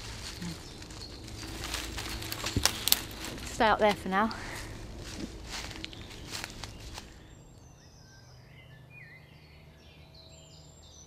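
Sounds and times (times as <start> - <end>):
twigs clicking: 0.0 - 7.2
dry twigs rustling: 0.0 - 7.4.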